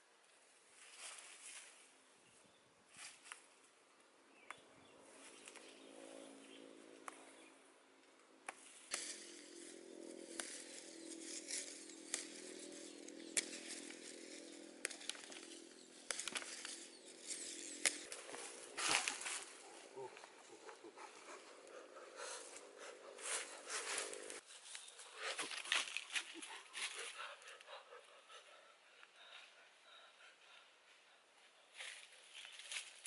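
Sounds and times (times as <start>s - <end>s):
leaves rustling: 0.7s - 2.0s, 8.6s - 27.2s
stems snapping: 8.2s - 20.8s, 23.4s - 27.0s
faint small engine running: 8.8s - 24.4s.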